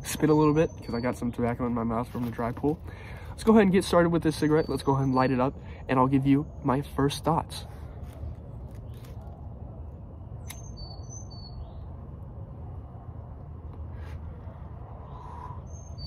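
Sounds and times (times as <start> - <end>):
small birds chirping: 0.0 - 9.3, 10.0 - 12.0, 15.0 - 16.0
low outdoor rumble: 0.0 - 16.0.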